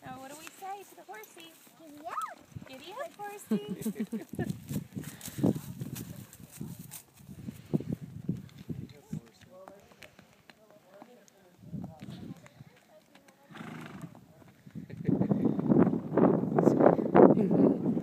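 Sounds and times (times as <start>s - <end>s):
horse hooves on dirt road: 0.0s - 15.2s.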